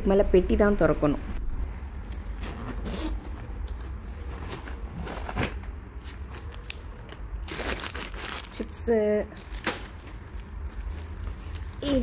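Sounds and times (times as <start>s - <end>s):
suitcase zipper rasping: 2.3s - 3.7s.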